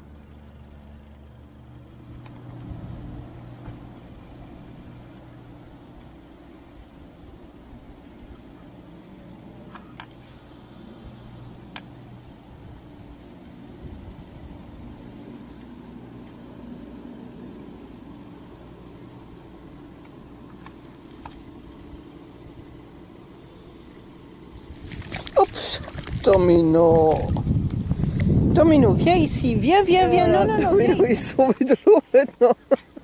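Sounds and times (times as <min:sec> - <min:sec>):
low mechanical hum: 0:00.0 - 0:33.0.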